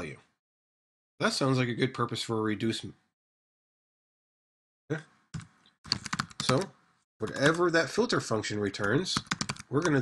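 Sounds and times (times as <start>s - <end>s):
computer keyboard typing: 5.4s - 7.7s, 8.8s - 10.0s.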